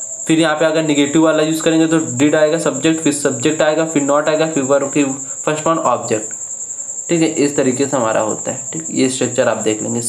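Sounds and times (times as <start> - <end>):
steady high-pitched trill: 0.0 - 10.0
man speaking: 0.3 - 6.4, 7.1 - 10.0.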